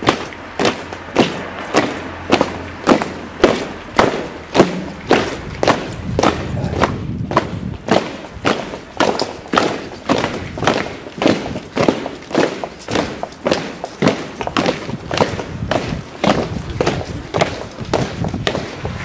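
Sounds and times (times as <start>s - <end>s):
boots marching on stone paving: 0.0s - 19.0s.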